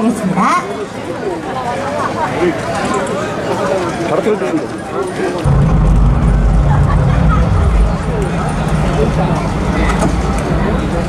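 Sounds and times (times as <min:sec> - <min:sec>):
crowd chatter: 0:00.0 - 0:11.0
deep bass tone from sound system: 0:05.5 - 0:10.6.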